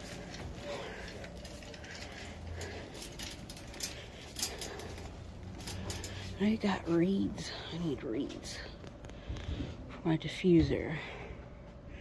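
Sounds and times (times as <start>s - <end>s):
wire shopping cart rattling: 0.0s - 8.6s.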